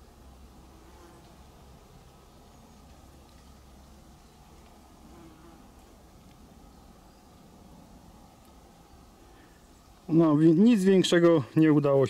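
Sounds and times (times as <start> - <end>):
low steady rumble: 0.0 - 11.0
insect buzzing: 0.1 - 10.1.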